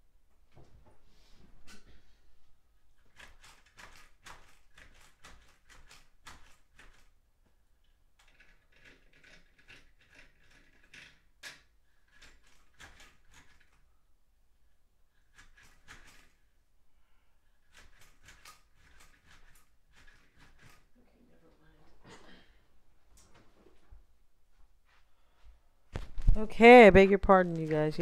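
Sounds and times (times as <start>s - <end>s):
window shade clicks and rattles: 3.0s - 7.2s, 8.1s - 13.9s, 15.2s - 16.5s, 17.6s - 21.0s.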